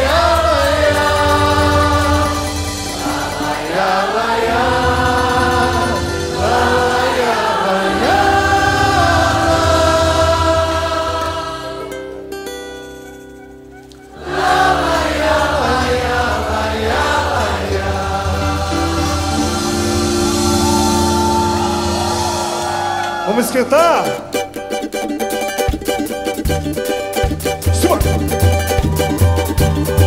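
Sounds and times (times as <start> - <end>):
choir singing gospel song: 0.0 - 12.3, 14.1 - 23.8
live band playing: 0.0 - 30.0.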